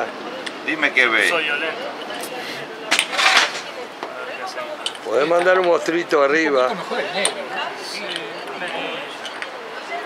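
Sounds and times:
low voices: 0.0s - 10.0s.

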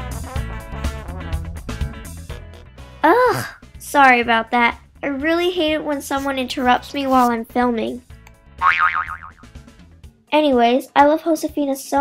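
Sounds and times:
background music: 0.0s - 12.0s
cartoon boing sound effect: 8.6s - 9.5s.

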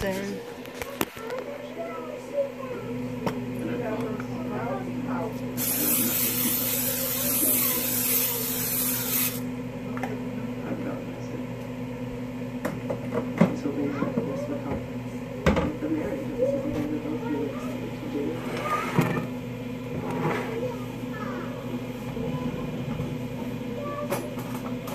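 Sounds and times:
aerosol spray hissing: 5.6s - 9.4s.

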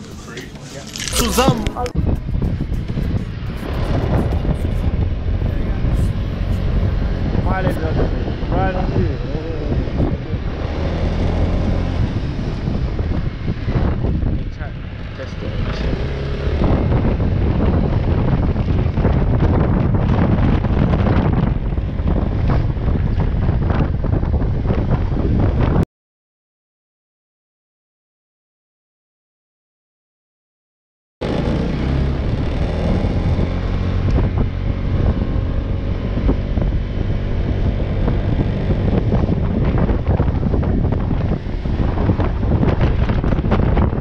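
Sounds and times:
wind buffeting microphone: 0.0s - 25.8s, 31.2s - 44.0s.

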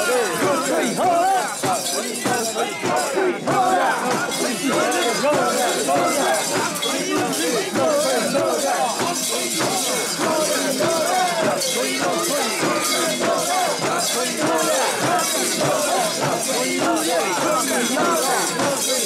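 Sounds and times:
crowd chanting and shouting: 0.0s - 19.0s.

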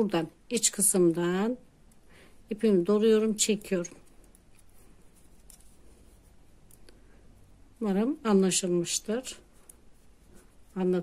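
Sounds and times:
yarn rustling: 2.4s - 11.0s
knitting needles clicking: 3.1s - 7.0s, 9.4s - 10.8s.

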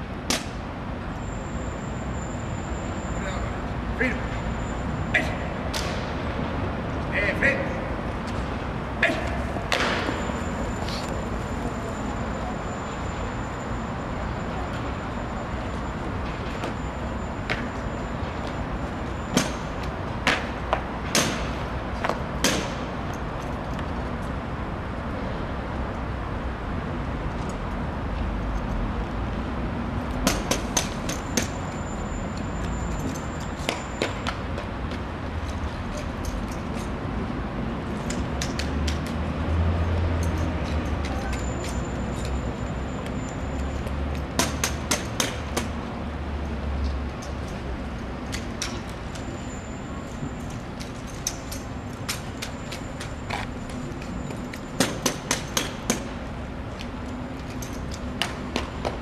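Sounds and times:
low rumble of city traffic: 0.0s - 59.0s.

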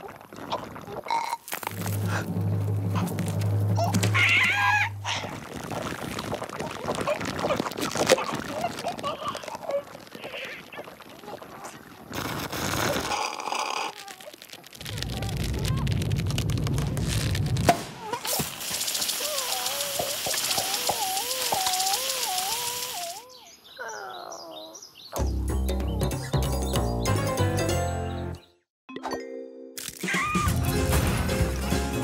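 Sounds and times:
hiss with whistle-like tone: 18.4s - 23.2s.

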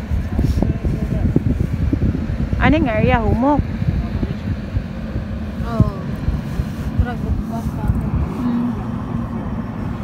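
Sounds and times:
hovercraft engine and propeller drone: 0.0s - 10.0s
wind buffeting microphone: 0.0s - 10.0s.

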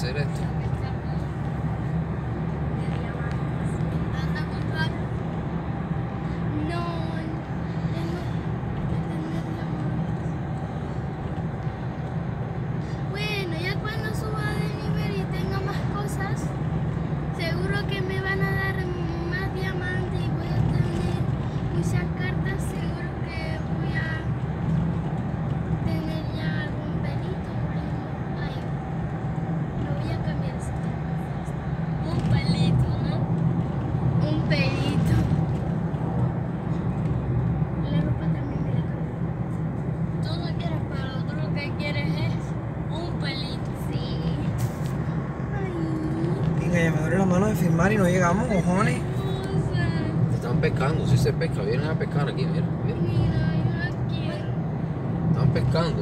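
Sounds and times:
car cabin road and engine noise: 0.0s - 56.0s
voices: 45.4s - 54.6s.

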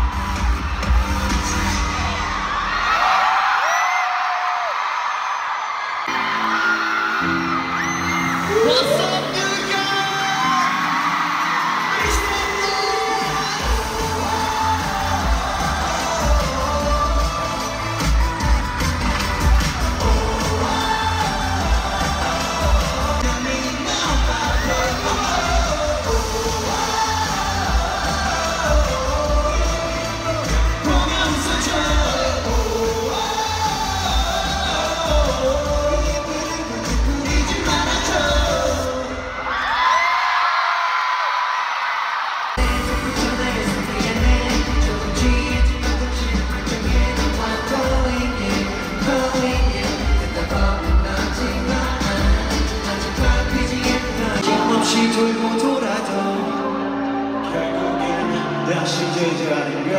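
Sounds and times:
crowd cheering: 0.0s - 59.9s
pop song over sound system: 0.0s - 59.9s
male group vocals: 11.8s - 39.6s, 42.6s - 59.9s
heavy bass beat: 13.4s - 38.8s, 42.6s - 54.4s.

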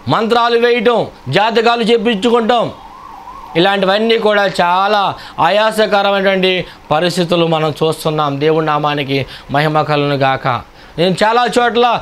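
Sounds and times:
man preaching in chanting delivery: 0.0s - 2.8s, 3.6s - 12.0s.

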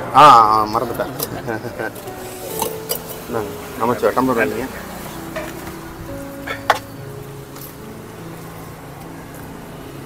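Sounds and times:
faint background music: 0.0s - 10.0s
metallic clinks of steel vessels: 2.0s - 3.3s, 6.4s - 7.0s
man speaking: 3.3s - 4.8s.

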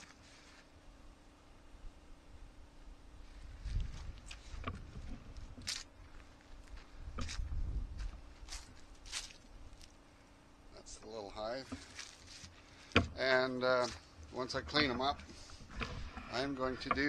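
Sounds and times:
footsteps through grass and leaves: 0.0s - 0.7s, 3.2s - 10.1s, 11.3s - 15.7s.

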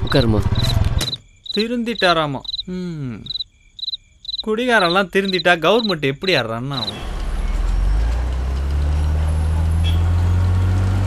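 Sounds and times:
man talking: 0.0s - 0.8s, 4.4s - 7.0s
crickets chirping: 0.0s - 8.0s.

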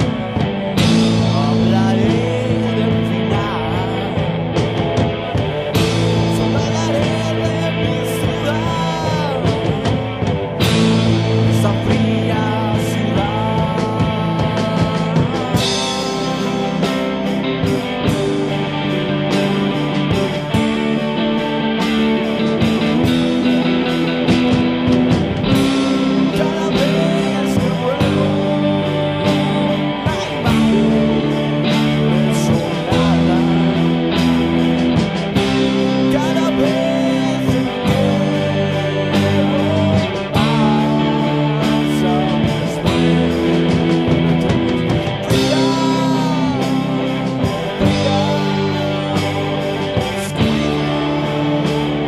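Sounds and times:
rock band playing: 0.0s - 52.0s.

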